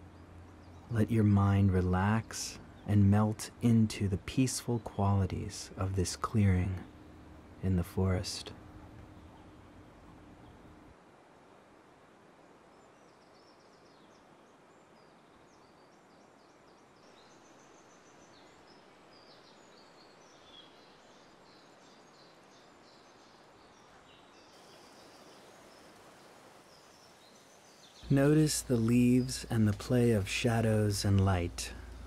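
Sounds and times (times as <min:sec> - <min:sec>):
small birds chirping: 0:00.0 - 0:10.9, 0:12.5 - 0:32.0
faint steady hiss: 0:00.0 - 0:32.0.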